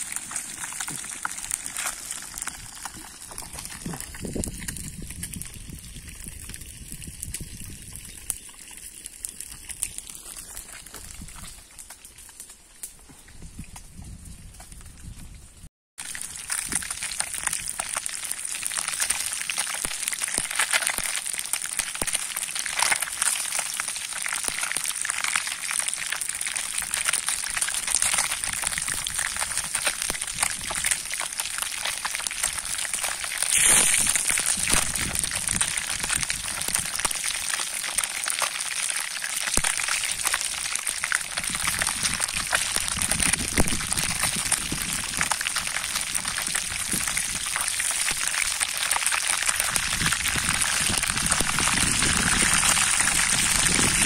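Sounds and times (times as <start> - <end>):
fish deep-frying in oil: 0.0 - 11.8, 16.0 - 54.0.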